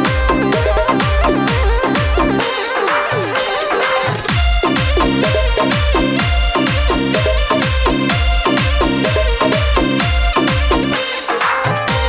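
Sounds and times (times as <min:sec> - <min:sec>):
electronic bass hits falling in pitch: 0:00.0 - 0:11.0
bending synth melody: 0:00.0 - 0:11.2.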